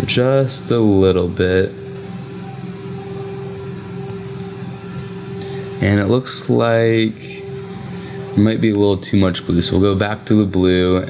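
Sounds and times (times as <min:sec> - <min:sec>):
steady low hum: 0:00.0 - 0:11.0
held mid-pitched tone: 0:01.1 - 0:10.8.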